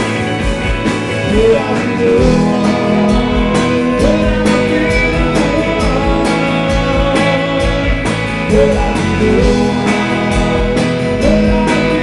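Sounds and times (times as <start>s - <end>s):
second guitar: 0.0s - 12.0s
steady drum beat: 0.0s - 12.0s
strummed acoustic guitar: 0.0s - 12.0s.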